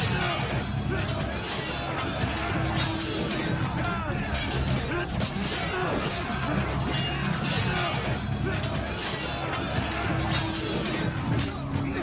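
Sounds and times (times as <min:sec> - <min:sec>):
film soundtrack music: 0:00.0 - 0:12.0.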